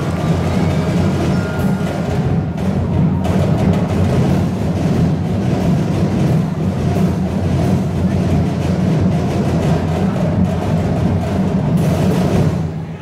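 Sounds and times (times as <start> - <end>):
drum ensemble rolling beat: 0.0 - 13.0.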